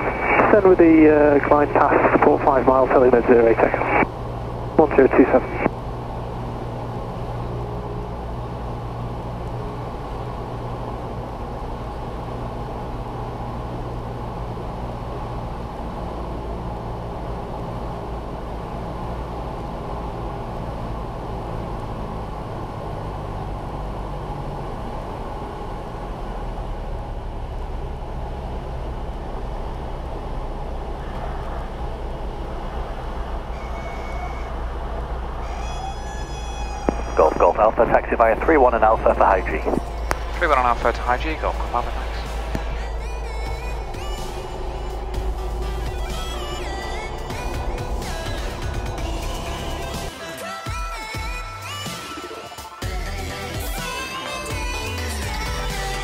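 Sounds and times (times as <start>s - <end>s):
small plane engine droning: 0.0s - 56.0s.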